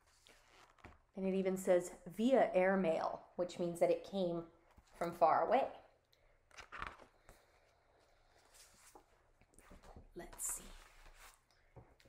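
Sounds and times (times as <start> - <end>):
paper rustling: 6.5 - 12.0.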